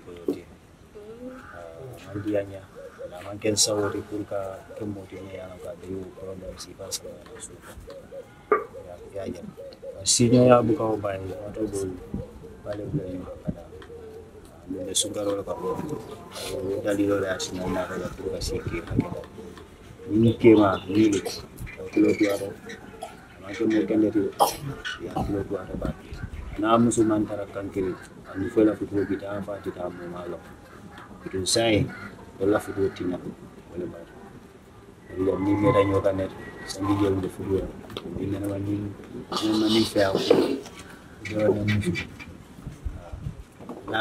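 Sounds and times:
man speaking: 0.0s - 0.6s, 1.6s - 7.9s, 8.5s - 13.9s, 14.5s - 22.8s, 23.4s - 30.6s, 31.2s - 34.2s, 35.0s - 42.2s.

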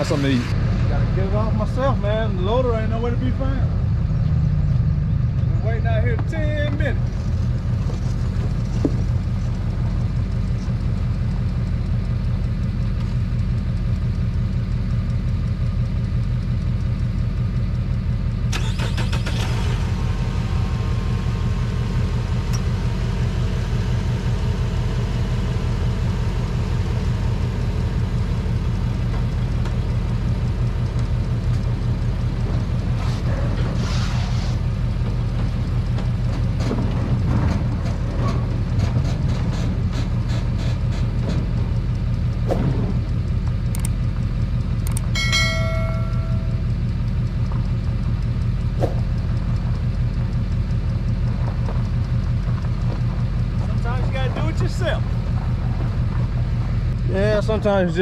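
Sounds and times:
vehicle engine idling: 0.0s - 58.0s.

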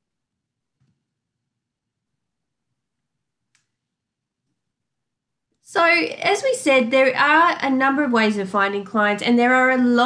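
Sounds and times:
computer mouse click: 3.5s - 3.8s.

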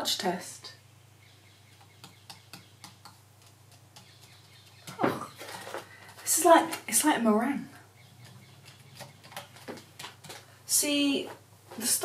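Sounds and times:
fingertips tapping hard filler: 1.7s - 5.1s.

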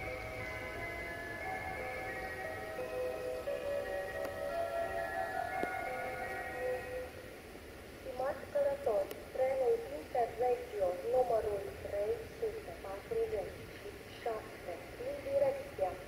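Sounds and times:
public address chime: 0.0s - 7.1s.

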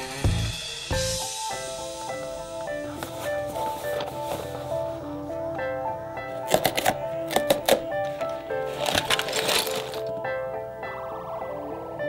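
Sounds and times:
background music melody: 0.0s - 12.0s
cardboard box clicks and crackles: 6.5s - 10.1s.

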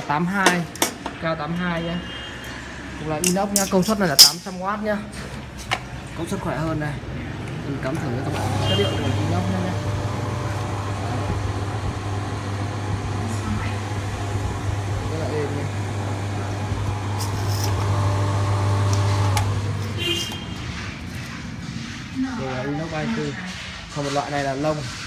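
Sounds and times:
spin dryer motor humming: 8.2s - 21.6s.

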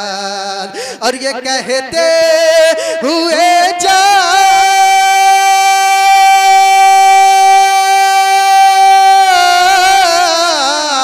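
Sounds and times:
man singing a long high note: 0.0s - 11.0s.

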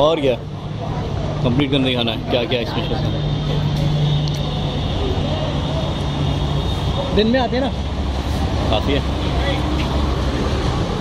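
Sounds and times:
faint voices: 0.0s - 10.4s.

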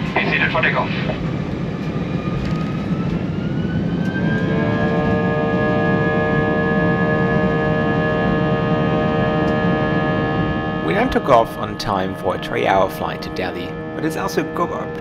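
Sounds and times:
jet engines spooling up: 0.0s - 15.0s.

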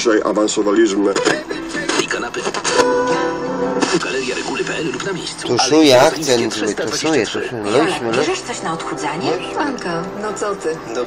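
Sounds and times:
radio jingle music: 0.7s - 11.0s.

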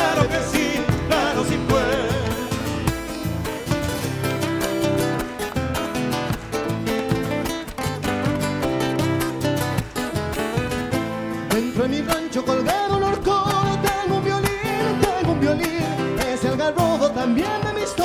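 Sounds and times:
steady bass drum beat: 0.0s - 3.5s
acoustic guitars playing: 0.0s - 18.0s.

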